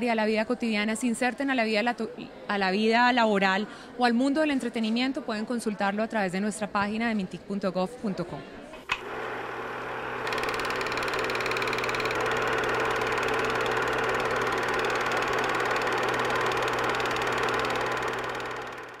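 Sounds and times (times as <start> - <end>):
machine whirring with rattle: 8.8 - 19.0.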